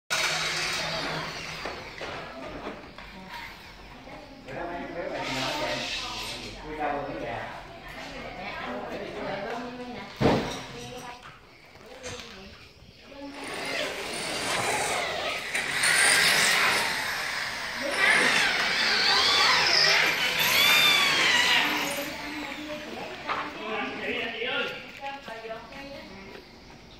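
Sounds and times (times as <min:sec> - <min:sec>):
electric drill running: 0:00.1 - 0:02.2, 0:05.1 - 0:06.4, 0:13.3 - 0:23.2.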